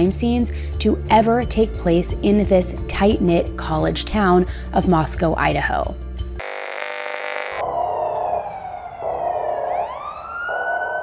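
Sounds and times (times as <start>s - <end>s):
electronic buzz: 6.4s - 7.6s
siren wailing: 6.4s - 11.0s.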